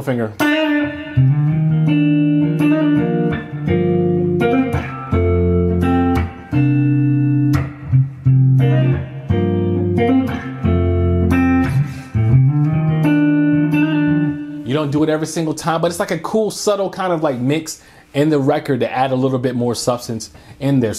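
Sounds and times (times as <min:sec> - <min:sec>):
electric guitar chords: 0:00.4 - 0:15.0.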